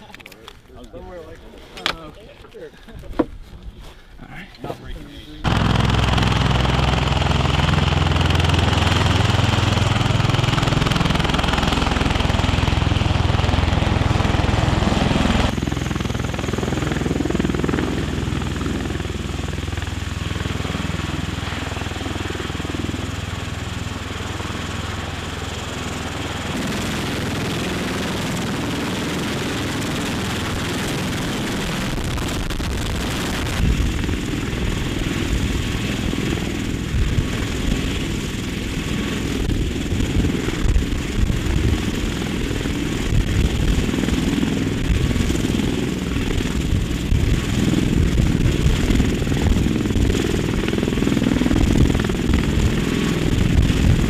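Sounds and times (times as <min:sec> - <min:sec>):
tiltrotor aircraft hovering drone: 0:05.4 - 0:54.0.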